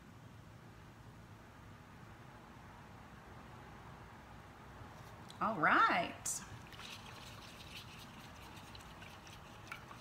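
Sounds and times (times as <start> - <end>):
paintbrush swirled in water: 6.5 - 10.0
brush ticking against cup: 6.6 - 10.0.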